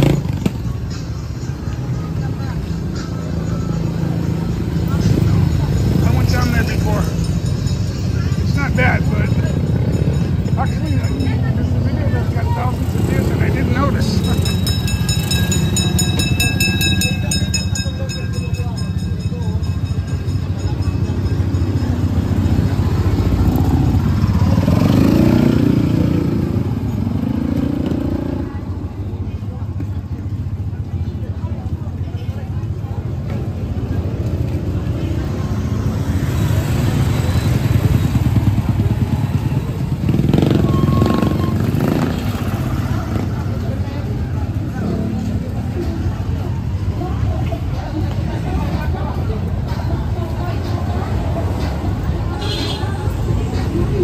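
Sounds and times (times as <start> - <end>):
motorcycle engines passing: 0.0 - 54.0
voices of passers-by: 0.0 - 54.0.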